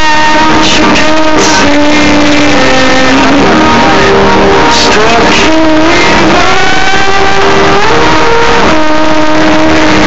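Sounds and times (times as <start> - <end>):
loud house music: 0.0 - 10.0
sliding synth lead: 0.0 - 10.0.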